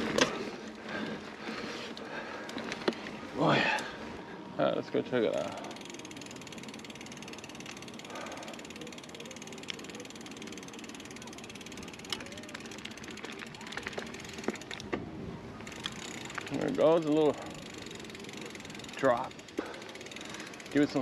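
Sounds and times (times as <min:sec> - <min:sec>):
bicycle freehub ticking: 0:00.0 - 0:04.0, 0:04.6 - 0:15.0, 0:15.6 - 0:21.0
bike knocking over rough ground: 0:12.1 - 0:16.5.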